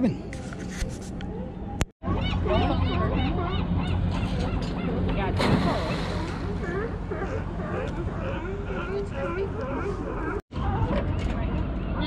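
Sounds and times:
gulls calling: 1.4 - 12.0
steady low hum: 1.4 - 12.0.

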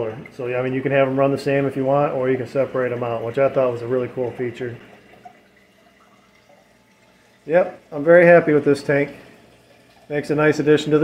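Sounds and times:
faint water trickling: 0.0 - 11.0
small water drips: 0.0 - 11.0.

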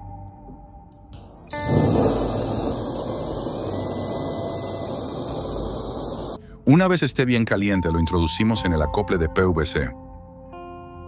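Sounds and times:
gas blowtorch flame rushing: 1.4 - 6.4.

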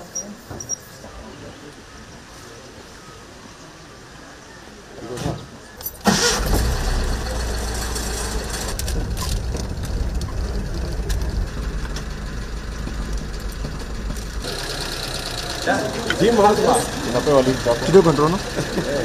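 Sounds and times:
car engine starting and idling: 5.8 - 19.0.

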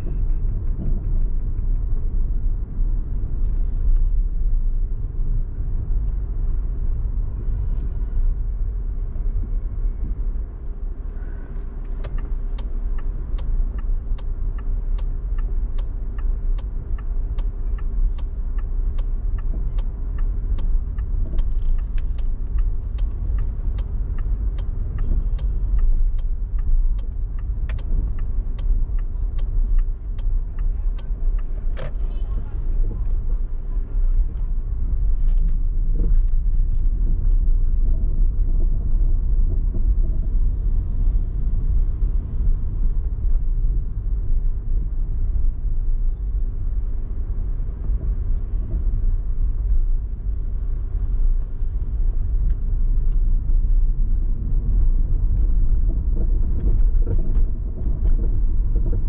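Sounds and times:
car rumble and road noise: 0.0 - 59.0
turn signal ticking: 0.0 - 59.0.

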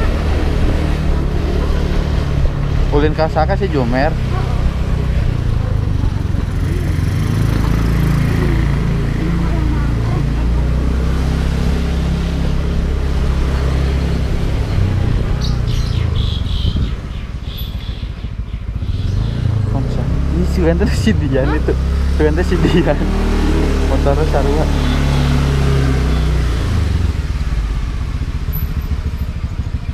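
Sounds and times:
small motorcycle engine rumbling: 0.0 - 29.9.

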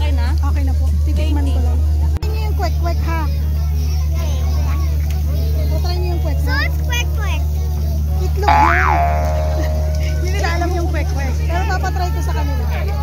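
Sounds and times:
cartoon boing: 8.5 - 10.5
steady low hum: 8.5 - 10.8
people talking: 8.5 - 12.6.

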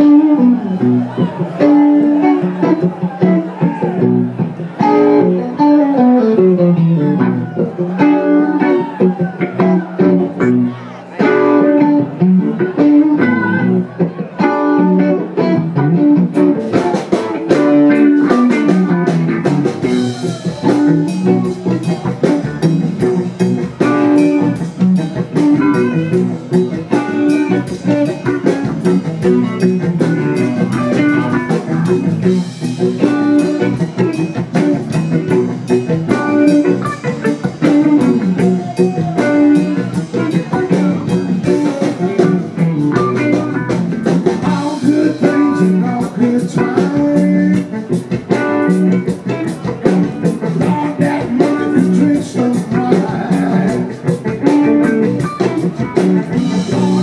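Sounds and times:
blues-rock band playing: 0.0 - 57.0
electric guitar lead lines: 0.0 - 57.0.

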